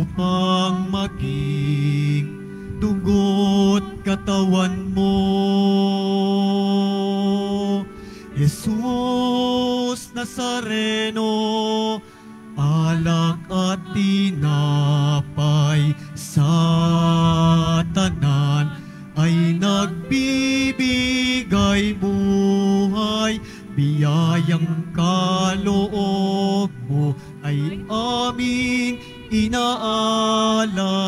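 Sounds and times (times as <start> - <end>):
person singing a hymn: 0.0 - 31.0.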